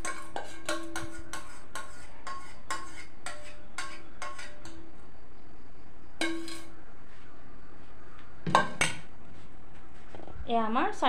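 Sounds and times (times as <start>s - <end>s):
steel bowl and spoon clinking: 0.0s - 5.0s, 6.2s - 6.8s.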